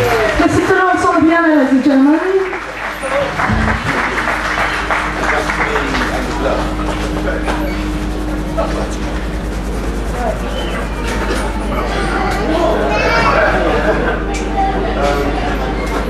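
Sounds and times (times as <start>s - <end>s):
audience applause: 0.0s - 7.5s
audience chatter: 0.0s - 16.0s
steady low hum: 3.2s - 12.8s
held low tone: 3.4s - 4.6s.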